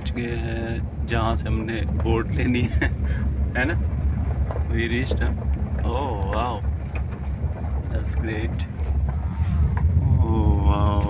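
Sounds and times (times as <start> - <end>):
people talking: 0.0 - 3.8, 4.6 - 6.6, 7.9 - 8.7, 10.0 - 11.0
car rumbling from inside cabin: 0.0 - 11.0.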